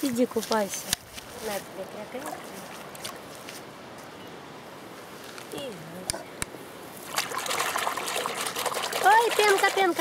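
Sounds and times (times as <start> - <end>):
water sloshing in a plastic basin: 7.0 - 10.0.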